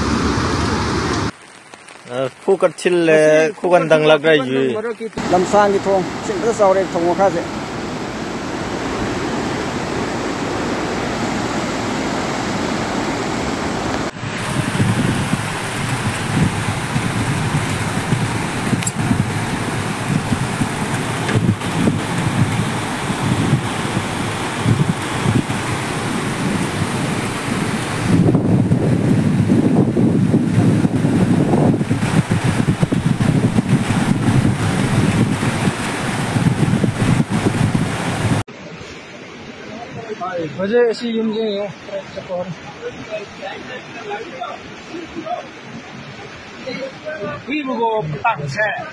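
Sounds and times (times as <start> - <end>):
floodwater rushing: 0.0 - 48.9
wind noise on microphone: 7.6 - 39.1.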